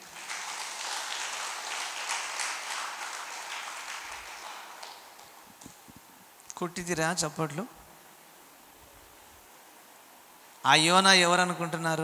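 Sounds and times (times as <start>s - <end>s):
audience applauding: 0.0s - 5.7s.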